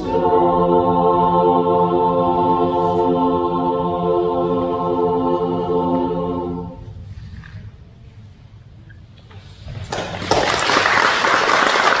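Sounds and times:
audience applauding: 9.9s - 12.0s.

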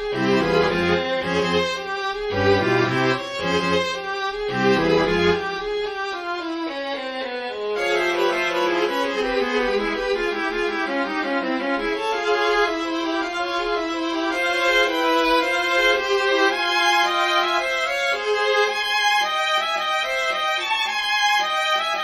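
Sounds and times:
low cello line: 0.0s - 6.8s, 7.5s - 22.0s
bowed strings playing: 0.0s - 21.2s.

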